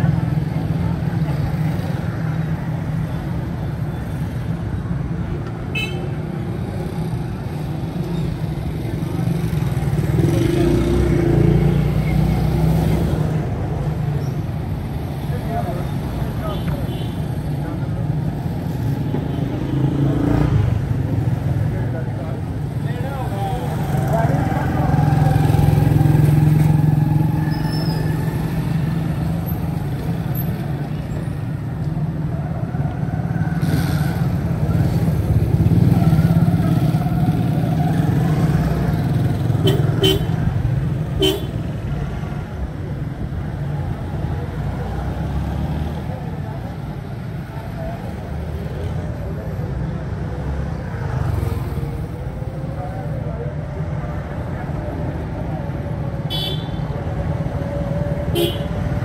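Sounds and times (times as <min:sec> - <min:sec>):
motorbike engines running: 0:00.0 - 0:59.0
horn toots: 0:41.2 - 0:41.6, 0:58.3 - 0:58.8.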